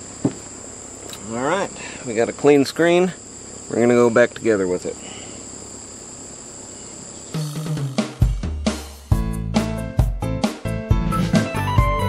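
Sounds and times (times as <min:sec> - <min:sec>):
high-pitched insect drone: 0:00.0 - 0:08.4
music with drums: 0:07.4 - 0:12.0.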